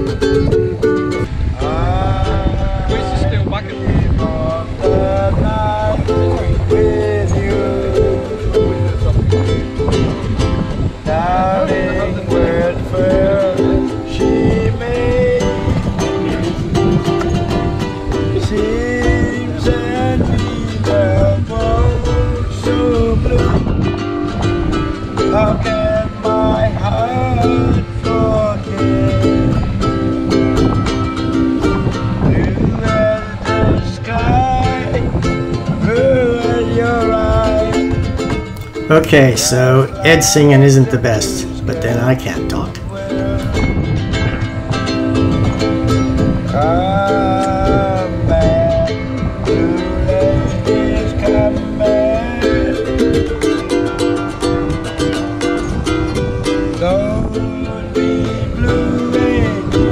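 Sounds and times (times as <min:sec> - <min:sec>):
ukulele strumming chords: 0:00.0 - 0:59.9
man singing roughly: 0:01.6 - 0:08.4, 0:11.0 - 0:16.0, 0:18.4 - 0:23.6, 0:38.9 - 0:43.6, 0:46.6 - 0:48.9, 0:50.0 - 0:53.2.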